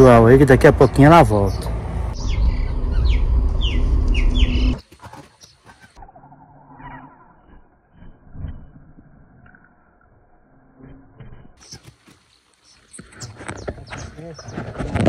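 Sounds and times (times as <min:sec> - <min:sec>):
loud low rumble: 0:00.0 - 0:04.8
bird chirping: 0:00.8 - 0:09.8, 0:11.6 - 0:14.9.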